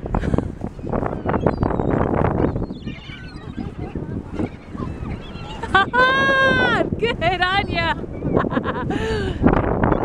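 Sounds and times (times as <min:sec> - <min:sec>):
gulls calling: 0:00.0 - 0:10.0.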